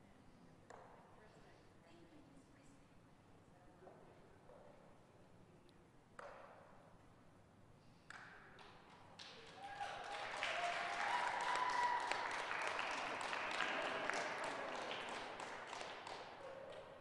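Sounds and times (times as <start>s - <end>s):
audience applause: 9.2s - 17.0s
people cheering: 9.2s - 17.0s.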